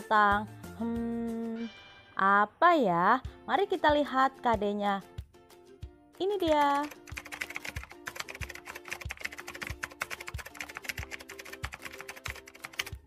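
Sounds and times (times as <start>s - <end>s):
background music with steady beat: 0.0s - 2.2s, 2.8s - 13.0s
keyboard typing clicks: 6.6s - 13.0s.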